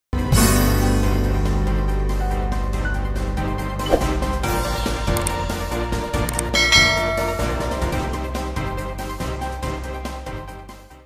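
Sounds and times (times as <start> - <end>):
background music: 0.2 - 11.0
notification bell ding: 6.5 - 8.2.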